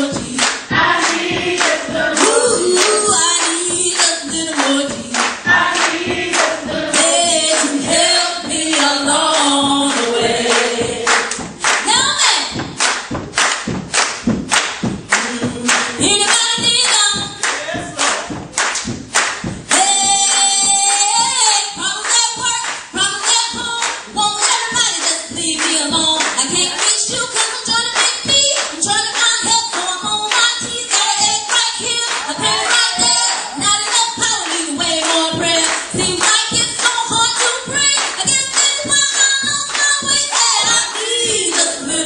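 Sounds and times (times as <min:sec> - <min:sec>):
choir voices singing: 0:00.0 - 0:03.2, 0:04.5 - 0:11.5
woman singing gospel: 0:00.0 - 0:12.6, 0:15.2 - 0:17.4, 0:19.7 - 0:42.0
congregation clapping: 0:00.1 - 0:21.4, 0:22.0 - 0:41.8.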